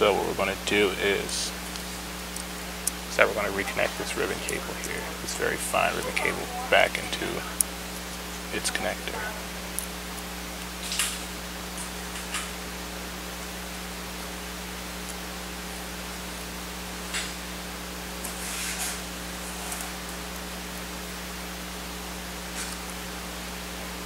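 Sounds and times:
mains hum: 0.0 - 24.0
steady hiss: 0.0 - 24.0.

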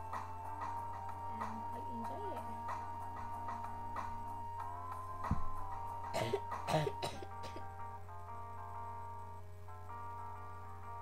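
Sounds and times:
instrumental backing track: 0.0 - 11.0
woman coughing: 6.2 - 7.6.

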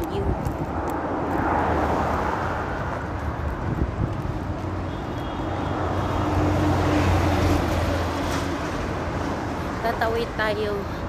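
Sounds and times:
vehicle passing by: 0.0 - 10.0
traffic noise: 0.0 - 11.0.

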